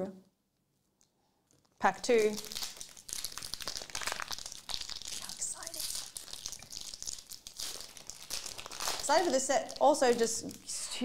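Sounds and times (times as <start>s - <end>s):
foil wrapper crinkling: 1.5s - 10.8s.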